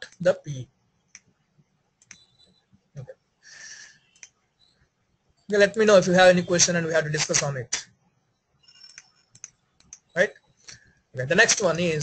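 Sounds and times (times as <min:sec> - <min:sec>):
computer mouse clicks: 0:02.0 - 0:02.4, 0:04.1 - 0:04.4, 0:08.8 - 0:10.9.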